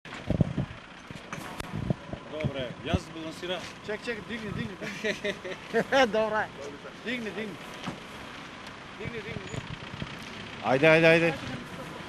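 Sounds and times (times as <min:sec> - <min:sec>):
outdoor street background noise: 0:00.1 - 0:12.0.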